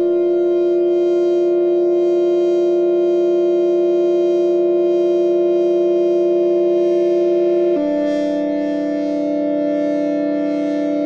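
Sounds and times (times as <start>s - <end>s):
synthesizer drone: 0.0s - 1.8s.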